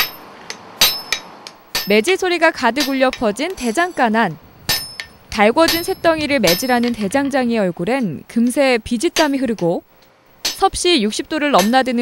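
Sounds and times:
hammers ringing on anvil: 0:00.8 - 0:01.2, 0:04.7 - 0:06.9.

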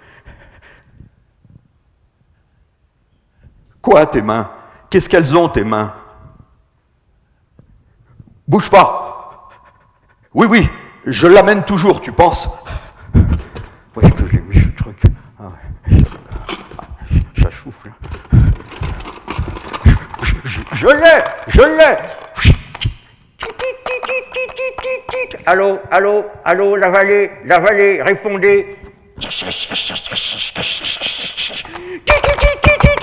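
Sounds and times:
hands rummaging in plastic bucket: 0:16.0 - 0:17.0, 0:18.0 - 0:22.4.

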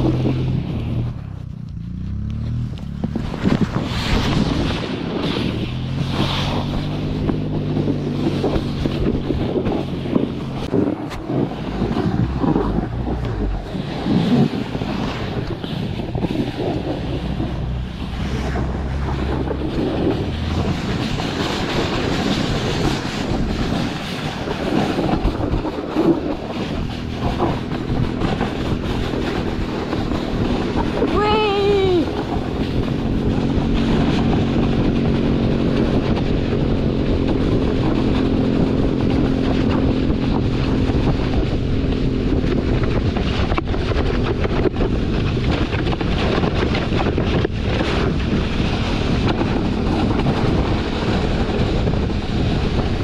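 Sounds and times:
board scraping over packed snow: 0:00.0 - 0:53.0
go-kart engine running: 0:00.0 - 0:53.0
wind on microphone: 0:00.0 - 0:53.0.

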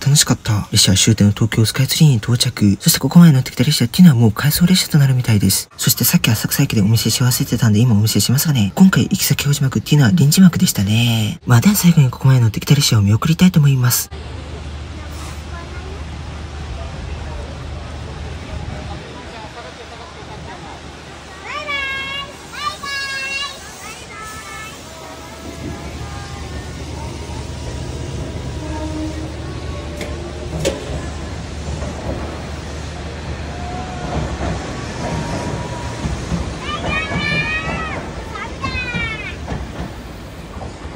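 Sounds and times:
electric train humming: 0:00.0 - 0:40.9
crowd chatter: 0:13.2 - 0:40.9.

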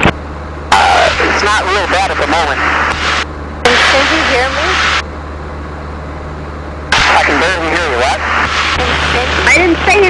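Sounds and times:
aircraft engine hum: 0:00.0 - 0:10.0
voice over intercom: 0:00.7 - 0:02.6, 0:03.7 - 0:04.8, 0:07.0 - 0:08.2
intercom hiss: 0:00.7 - 0:05.0, 0:07.0 - 0:10.0.

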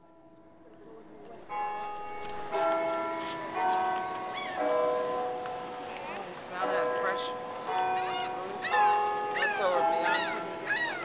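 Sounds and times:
bell-like chiming notes: 0:00.0 - 0:10.8.

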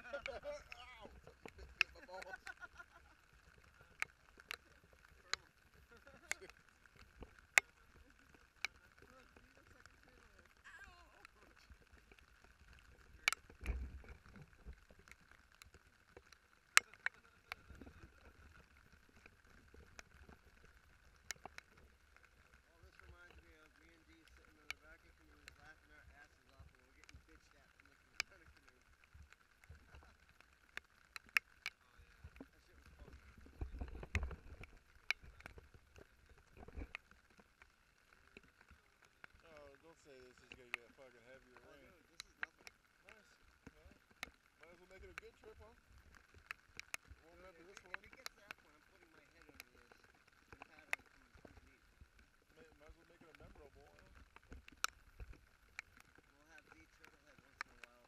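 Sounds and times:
rain falling on river: 0:00.0 - 0:58.0
raindrops ticking on camera housing: 0:00.0 - 0:58.0.

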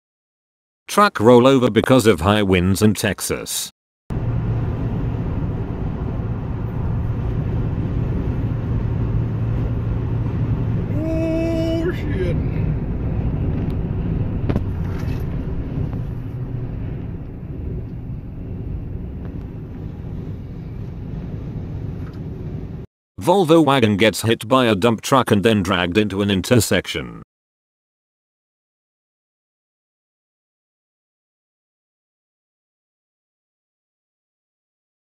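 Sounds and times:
car road and wind noise: 0:04.1 - 0:22.9.

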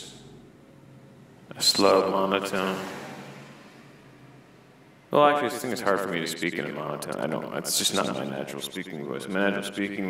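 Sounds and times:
person speaking: 0:01.5 - 0:02.9, 0:05.1 - 0:10.0.

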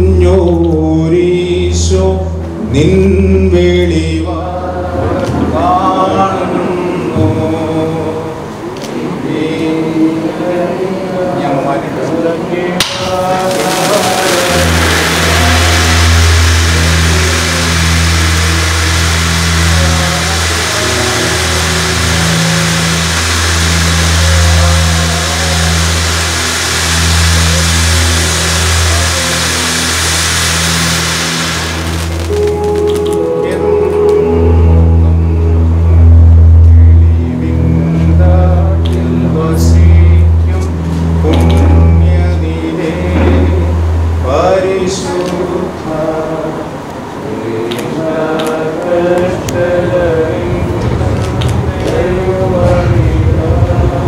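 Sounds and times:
chant-like singing: 0:00.0 - 0:36.0, 0:36.7 - 0:54.0
steady low drone: 0:00.0 - 0:54.0
steady hiss: 0:12.8 - 0:33.4
instrumental music with low bass notes: 0:13.2 - 0:46.3.

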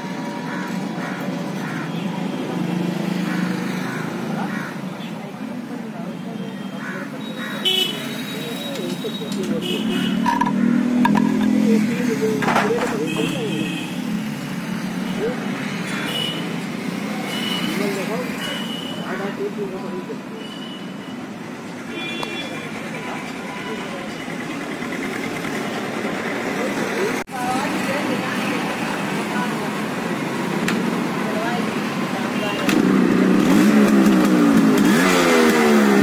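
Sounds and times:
street traffic rumbling: 0:00.0 - 0:36.0.

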